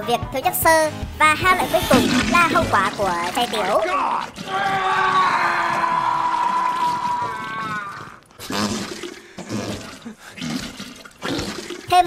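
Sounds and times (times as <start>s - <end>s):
toilet water gushing: 1.6s - 5.1s, 6.2s - 12.0s.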